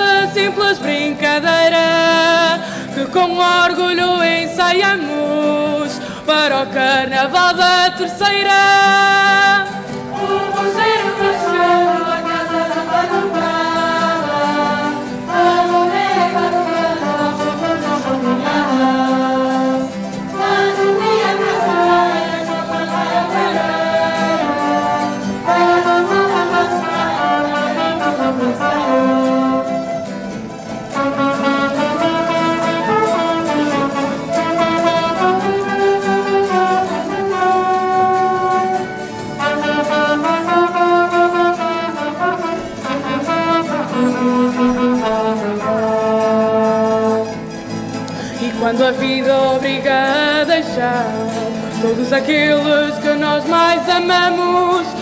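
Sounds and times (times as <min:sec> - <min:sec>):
carnival band instrumental music: 0:00.0 - 0:07.6, 0:08.5 - 0:55.0.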